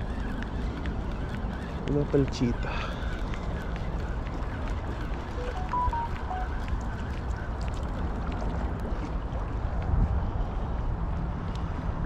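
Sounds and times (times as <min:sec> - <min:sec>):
wind buffeting microphone: 0:00.0 - 0:05.4, 0:06.5 - 0:12.0.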